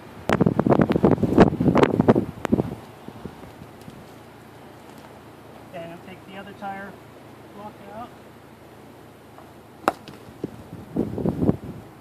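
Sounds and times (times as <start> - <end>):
scraping on rocky ground: 0.3 - 5.2
hard knocks of blocking: 9.4 - 10.2.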